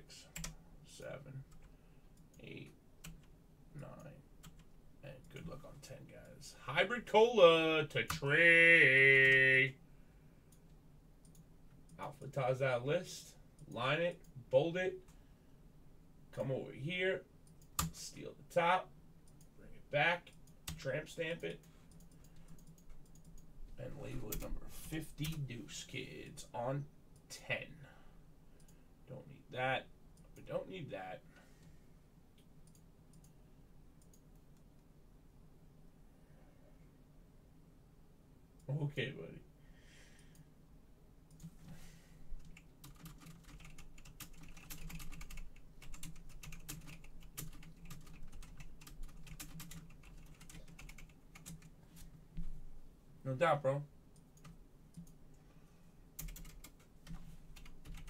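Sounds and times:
person speaking: 2.4s - 2.8s, 5.0s - 9.8s, 19.6s - 21.7s, 23.8s - 27.9s, 29.1s - 31.3s
computer keyboard typing: 21.4s - 23.5s, 42.4s - 51.7s, 56.2s - 58.0s.

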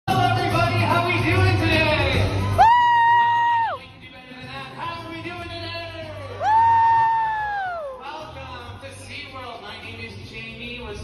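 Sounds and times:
person whooping high-pitched: 6.4s - 8.0s.

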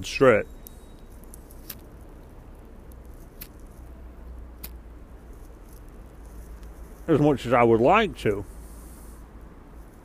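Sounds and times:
low steady hum: 0.0s - 10.0s.

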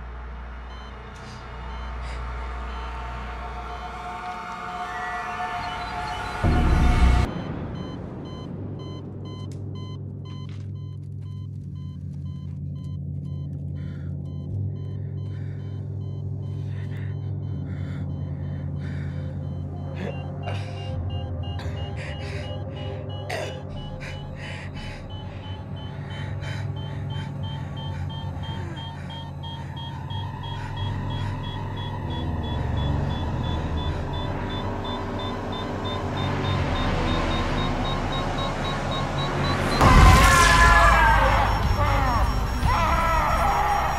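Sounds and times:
low rumbling film score drone: 0.0s - 43.9s
heart monitor beeping: 0.6s - 43.9s.

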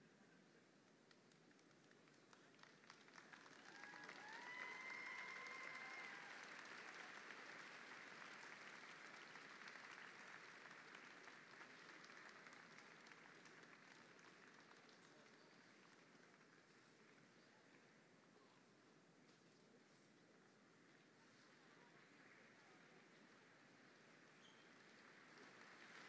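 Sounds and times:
arena audience applause: 1.1s - 18.0s, 21.3s - 26.0s
single cheer: 3.6s - 7.3s.

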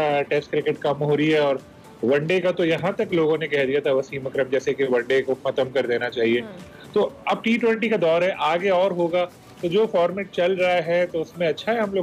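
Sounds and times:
man speaking: 0.0s - 12.0s.

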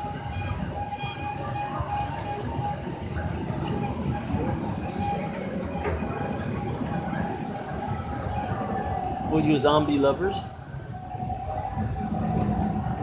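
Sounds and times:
faint music with held tone: 0.0s - 13.0s
steady low rumble: 0.0s - 13.0s.

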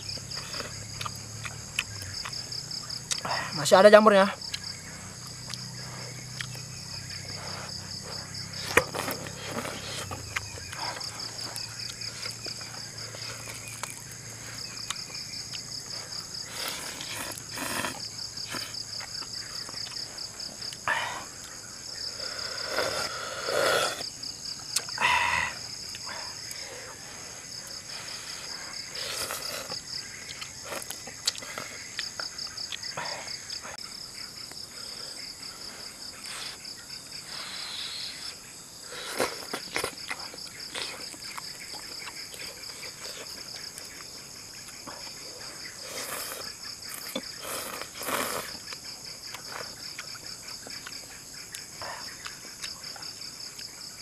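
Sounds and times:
insects chirring: 0.0s - 54.0s
slurping and chewing noodles: 7.3s - 20.8s, 27.5s - 32.2s, 38.9s - 52.9s.

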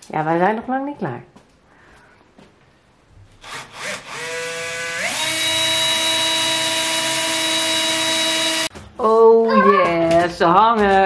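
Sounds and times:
cordless drill drilling into wall: 3.4s - 8.7s.

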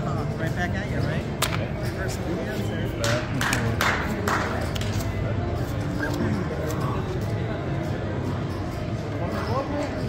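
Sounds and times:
background music: 0.0s - 10.0s
casino chatter: 0.0s - 10.0s.

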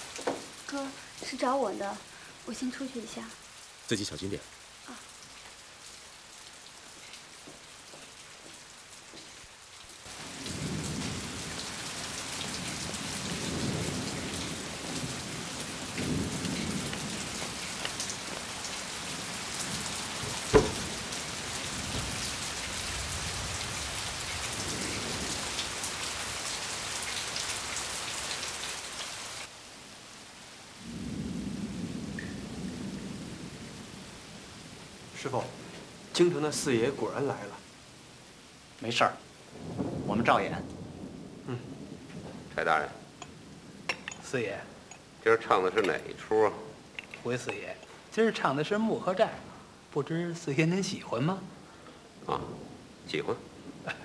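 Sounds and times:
heavy rain: 0.0s - 54.0s
thunder rumbling: 10.1s - 26.6s, 30.8s - 37.5s, 39.5s - 46.9s, 52.2s - 54.0s
sharp thunder crack: 12.5s - 18.2s, 19.0s - 23.9s, 39.5s - 43.0s.

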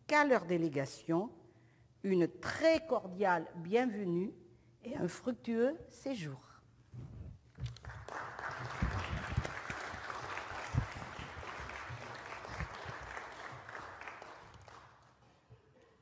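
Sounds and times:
applause: 7.7s - 15.4s.

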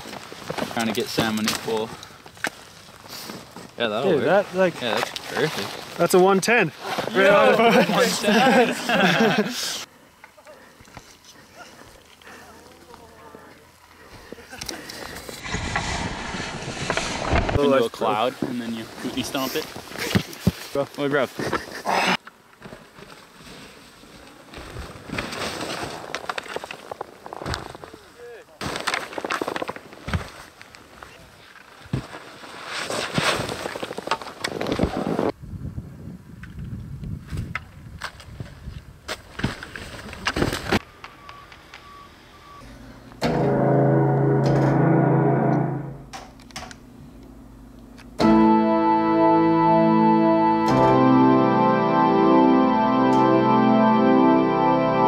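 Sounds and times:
keyboard music: 43.2s - 46.1s, 48.2s - 55.0s.

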